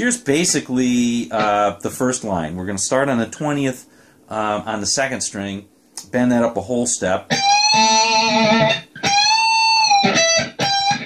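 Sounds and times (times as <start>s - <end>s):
clean electric guitar note bending: 7.3s - 11.0s.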